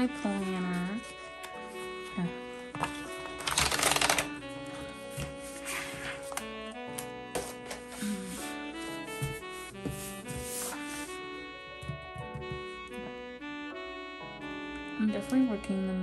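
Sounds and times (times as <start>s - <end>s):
instrumental background music: 0.0s - 16.0s
paper pages crackling rustle: 0.2s - 11.2s
light paper clicks: 2.7s - 4.4s.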